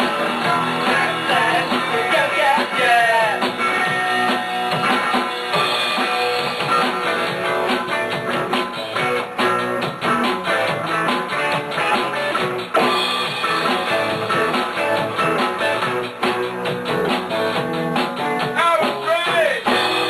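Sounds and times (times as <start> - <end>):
rock band playing: 0.0 - 20.0.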